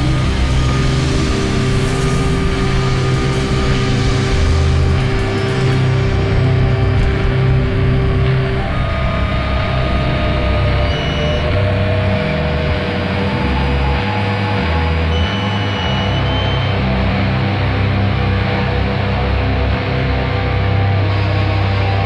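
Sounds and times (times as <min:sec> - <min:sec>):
long held high notes: 0:00.0 - 0:18.0
doom metal instrumental: 0:00.0 - 0:22.0.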